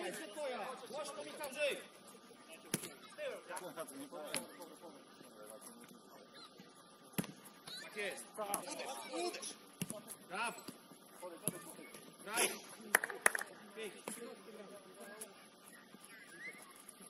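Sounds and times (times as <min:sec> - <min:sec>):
football kick thuds: 0:07.1 - 0:07.5.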